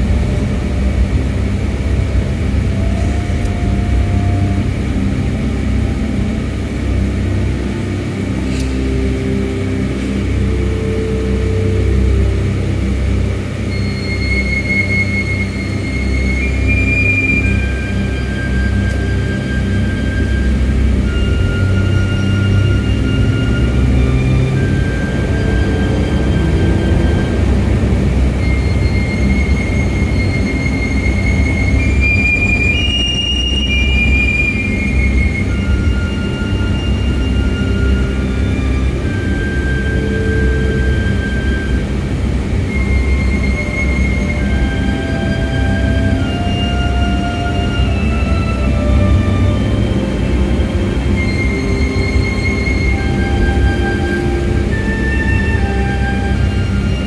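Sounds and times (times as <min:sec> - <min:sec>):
long high tones: 0:00.0 - 0:57.0
low rumble of car driving: 0:00.0 - 0:57.0.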